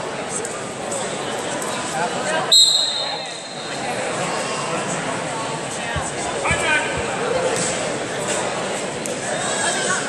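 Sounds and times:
chatter in a sports hall: 0.0 - 10.0
referee's whistle blast: 2.5 - 3.7.

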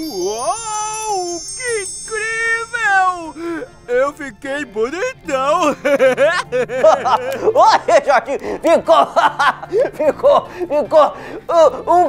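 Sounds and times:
sparkly magic chimes: 0.0 - 4.5.

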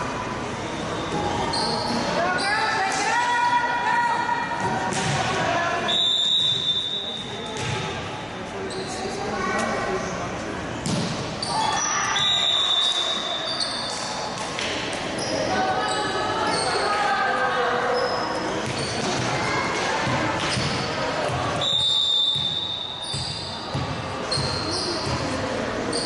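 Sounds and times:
people talking and calling out: 0.0 - 26.0
volleyball hits: 4.6 - 5.5, 10.8 - 11.3
referee's whistle: 5.9 - 7.2, 11.7 - 13.8, 21.6 - 23.5.

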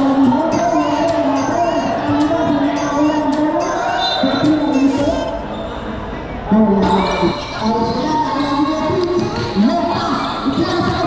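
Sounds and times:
players and spectators shouting: 0.0 - 11.0.

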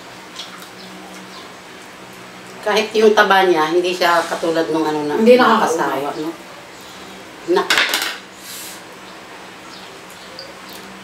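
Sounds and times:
cutlery clattering on metal tray: 7.7 - 8.2.

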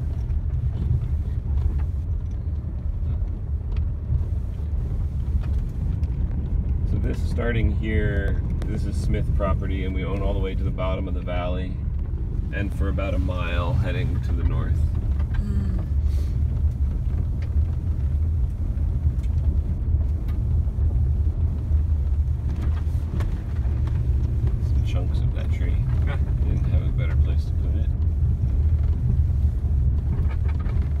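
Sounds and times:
car rumble on dirt road: 0.0 - 31.0.

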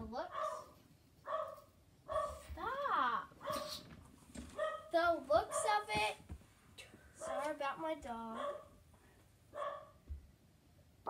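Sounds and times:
dog yelping: 0.3 - 0.7, 1.3 - 2.4, 4.6 - 4.9, 8.4 - 8.7, 9.6 - 10.0.

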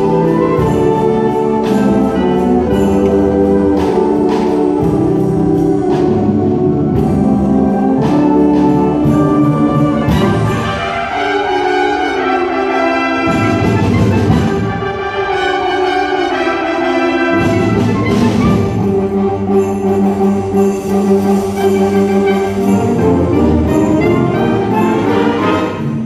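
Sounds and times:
concert band playing christmas music: 0.0 - 26.0.

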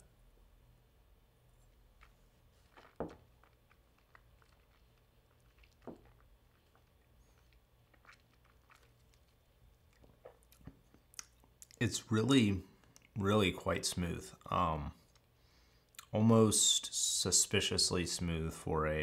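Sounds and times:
lip smacks: 2.0 - 11.8, 15.0 - 16.1.

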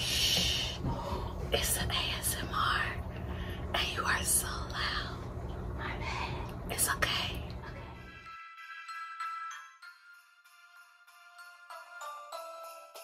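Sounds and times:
low hum: 0.0 - 8.2
woman whispering: 1.5 - 3.1, 3.7 - 5.2, 5.8 - 8.1.

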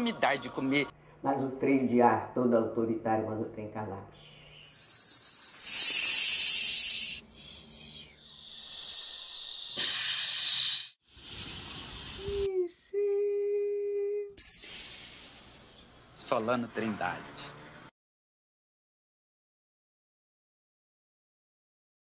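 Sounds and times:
steam hissing: 4.6 - 7.7, 8.3 - 12.5.

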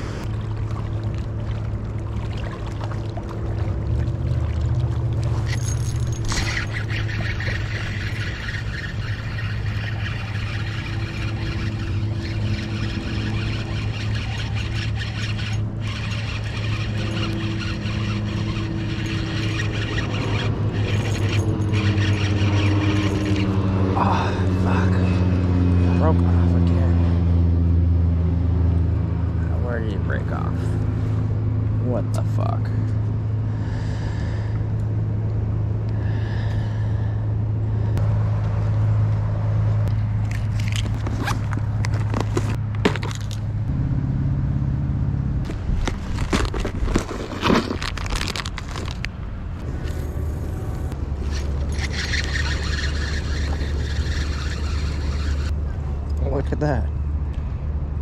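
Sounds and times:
low engine hum: 0.0 - 58.0.

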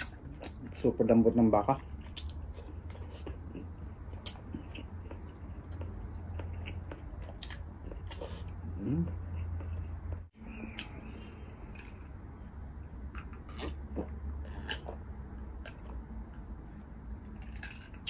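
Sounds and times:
chewing with wet clicks: 1.8 - 11.0, 13.2 - 16.5.

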